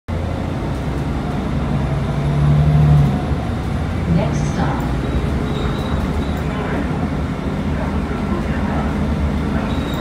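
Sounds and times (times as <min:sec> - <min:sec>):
bus engine and road drone: 0:00.1 - 0:10.0.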